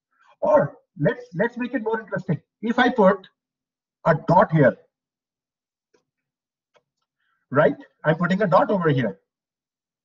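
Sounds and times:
faint keyboard clicks: 0:05.9 - 0:07.2.

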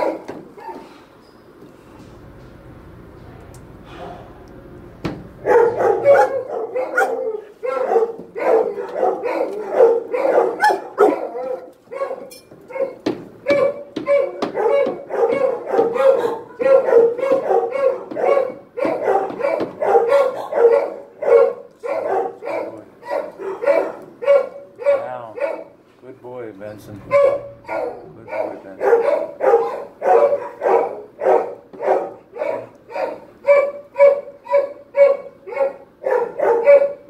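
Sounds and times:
dog barking: 0:00.0 - 0:00.9, 0:05.4 - 0:25.8, 0:27.1 - 0:37.0.

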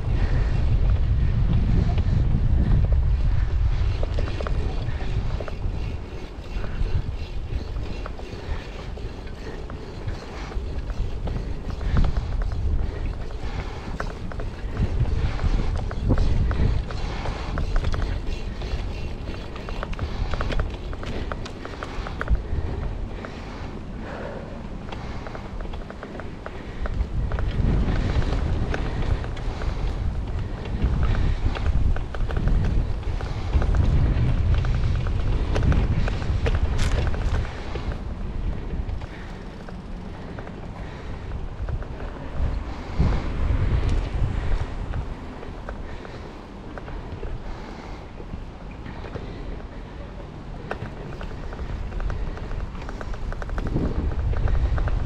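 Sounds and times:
tyre noise on dirt: 0:00.0 - 0:49.8, 0:50.4 - 0:55.0
bike clicks and rattles: 0:00.0 - 0:55.0
wind buffeting microphone: 0:00.0 - 0:55.0.

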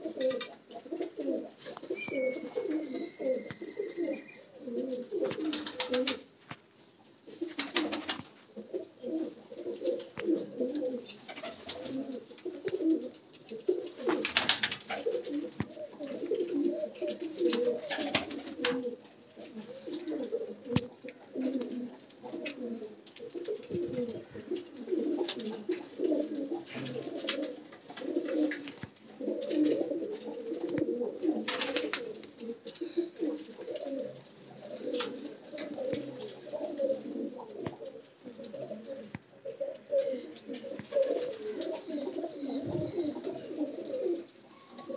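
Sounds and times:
pigeons cooing: 0:00.0 - 0:06.3, 0:07.2 - 0:44.9.

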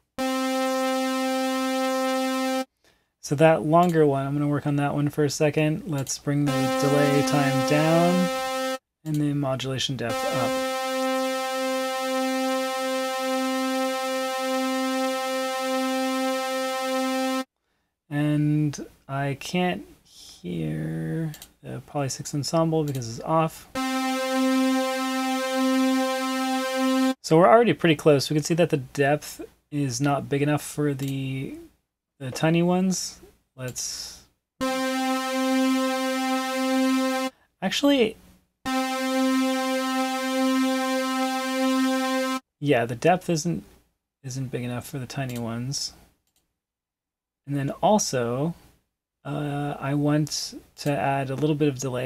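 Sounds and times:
synthesizer holding steady note: 0:00.0 - 0:02.7, 0:06.5 - 0:08.8, 0:10.1 - 0:17.5, 0:23.8 - 0:27.2, 0:34.6 - 0:37.3, 0:38.7 - 0:42.4.

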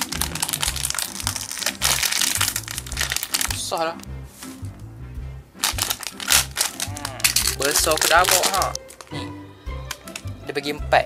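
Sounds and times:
plastic packaging crinkling: 0:00.0 - 0:03.8, 0:05.6 - 0:09.2.

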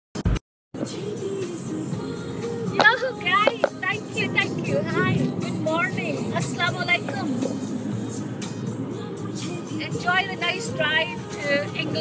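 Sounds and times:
road and engine hum inside car: 0:00.8 - 0:12.0
song playing on car stereo: 0:00.8 - 0:12.0.

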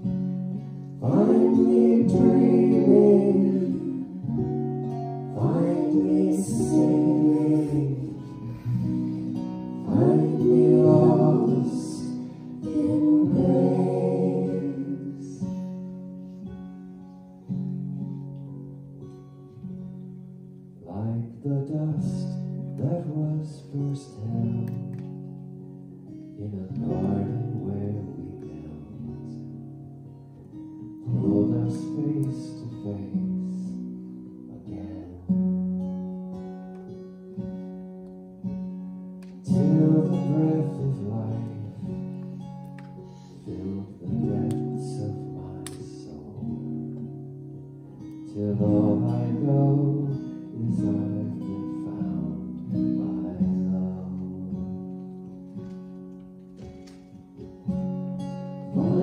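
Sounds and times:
acoustic guitar strummed chords: 0:00.0 - 0:59.0.

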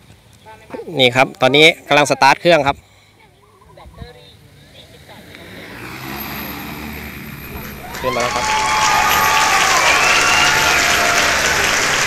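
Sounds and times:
drone rotors whirring: 0:05.3 - 0:12.0.

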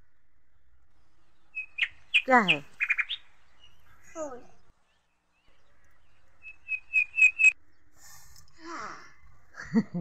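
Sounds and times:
bird chirping: 0:00.5 - 0:08.0.

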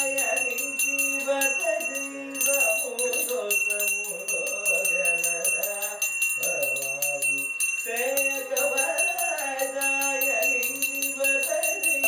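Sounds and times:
hand bell rung rapidly: 0:00.0 - 0:12.0
man singing: 0:00.0 - 0:12.0.

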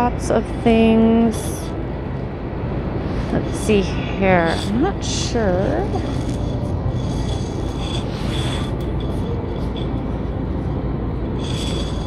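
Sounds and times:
store interior hum: 0:00.0 - 0:12.0.

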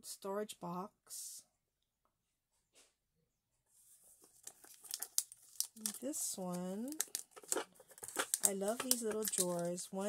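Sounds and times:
plastic crinkling: 0:04.2 - 0:10.0
plastic box clicking and rattling: 0:06.9 - 0:09.8.

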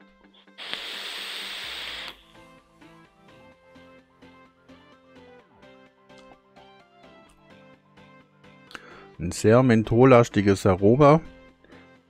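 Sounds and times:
quiet background music: 0:00.0 - 0:12.0
e-cigarette hiss: 0:00.3 - 0:02.5.

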